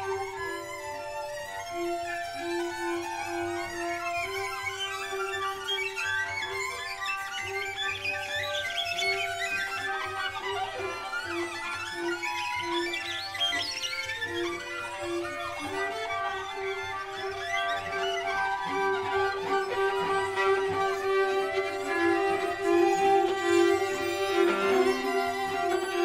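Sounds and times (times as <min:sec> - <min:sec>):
bowed string quartet playing: 0:00.0 - 0:26.0
scratchy high bow sounds: 0:00.0 - 0:26.0.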